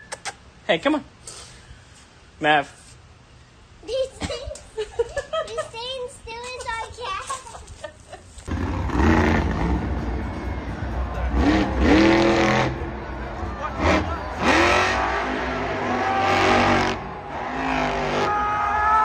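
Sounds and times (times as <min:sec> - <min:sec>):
truck engine revving: 0:08.5 - 0:18.6.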